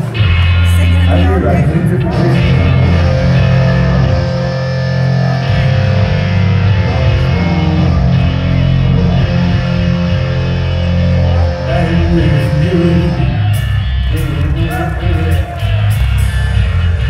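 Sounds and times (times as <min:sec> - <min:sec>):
bass guitar: 0:00.0 - 0:17.0
drums: 0:00.0 - 0:17.0
electric guitar: 0:00.0 - 0:17.0.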